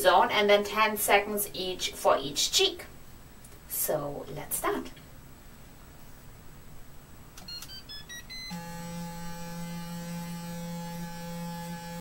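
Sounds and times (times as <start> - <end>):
short high beeps: 7.5 - 8.6
facial brush humming: 8.3 - 12.0.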